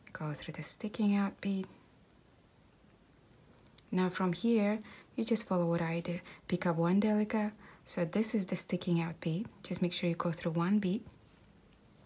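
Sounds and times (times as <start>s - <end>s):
woman speaking: 0.0s - 1.8s, 3.9s - 11.1s.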